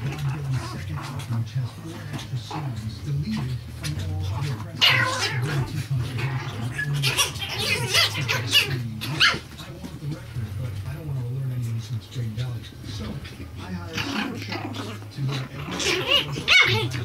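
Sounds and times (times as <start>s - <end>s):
puppies yapping and squealing: 3.8s - 9.6s, 13.2s - 17.0s.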